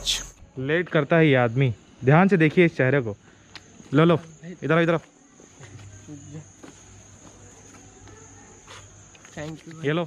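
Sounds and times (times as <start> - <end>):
high-pitched insect buzz: 0.0 - 0.5.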